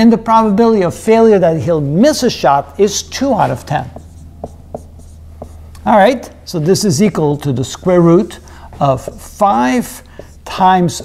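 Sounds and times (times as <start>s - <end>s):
marker writing on whiteboard: 2.8s - 11.0s
marker tip tapping board: 3.8s - 5.9s, 9.8s - 10.6s.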